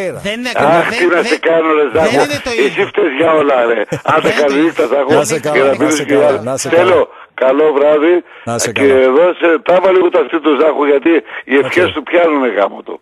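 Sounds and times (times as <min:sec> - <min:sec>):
radio host talking: 0:00.0 - 0:13.0.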